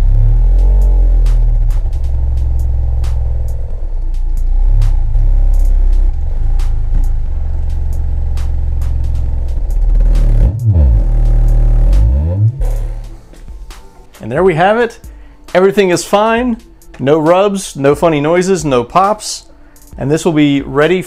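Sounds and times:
subwoofer deep bass tones: 0.0s - 13.8s.

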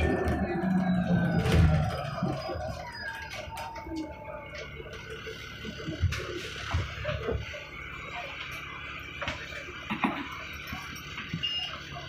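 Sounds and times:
bus engine running: 0.0s - 12.0s.

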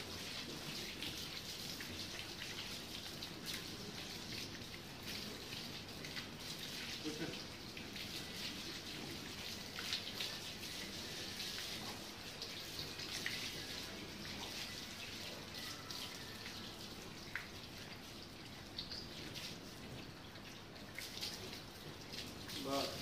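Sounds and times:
drips: 0.0s - 23.0s
water from a hose splashing: 0.0s - 23.0s.

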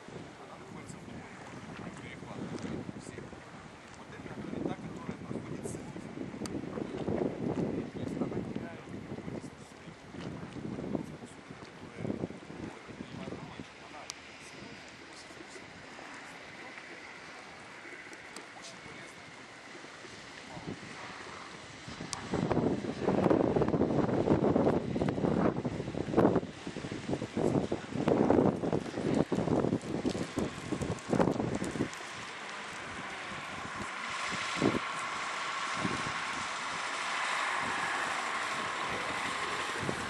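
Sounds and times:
steady outdoor hiss: 0.0s - 40.0s
wind buffeting microphone: 0.0s - 40.0s.

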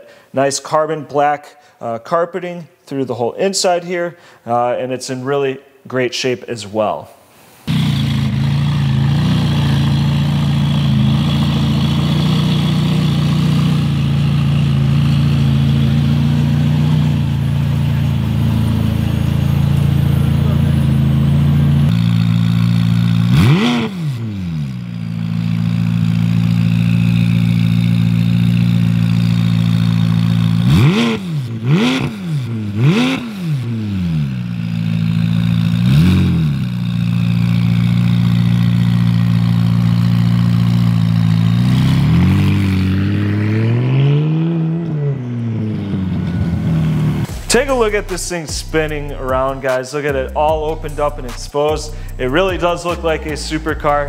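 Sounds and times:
car engine idling and revving: 7.7s - 54.0s.

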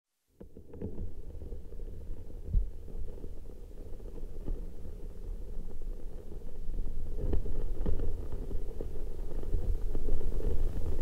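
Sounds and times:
small clicks and crackles: 0.3s - 11.0s.

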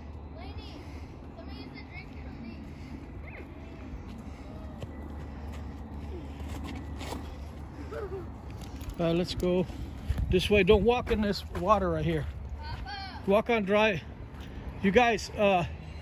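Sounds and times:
distant children calling out: 0.0s - 6.6s
low outdoor rumble: 0.0s - 16.0s.

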